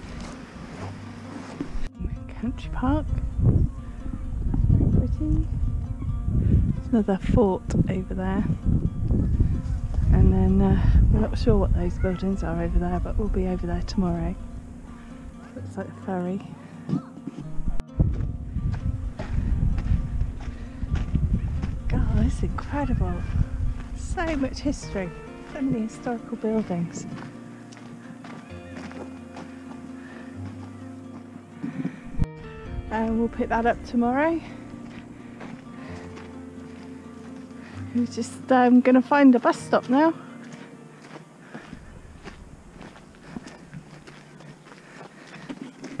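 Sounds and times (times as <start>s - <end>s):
footsteps on gravel: 0.0s - 1.9s, 16.8s - 32.3s, 33.0s - 46.0s
steady low rumble: 17.8s - 25.9s.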